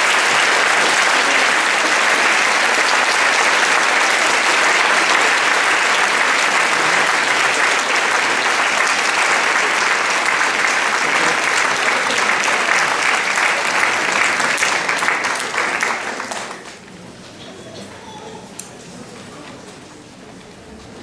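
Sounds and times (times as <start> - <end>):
audience applauding: 0.0 - 16.9.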